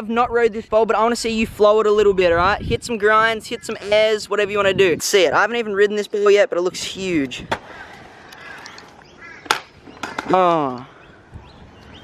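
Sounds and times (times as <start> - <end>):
faint bird chirp: 8.2 - 12.0
scooter clacking on concrete: 8.4 - 10.8.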